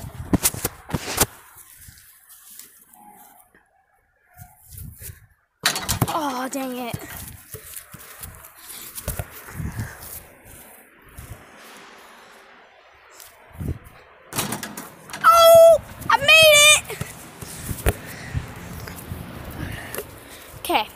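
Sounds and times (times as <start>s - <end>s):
sharp knocks and handling: 5.6s - 7.8s, 14.4s - 15.4s
wordless falling voice sound: 15.2s - 17.0s.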